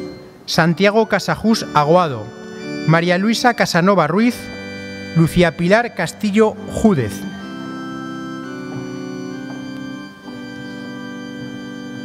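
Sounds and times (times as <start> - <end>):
slow organ chords: 0.0 - 12.0.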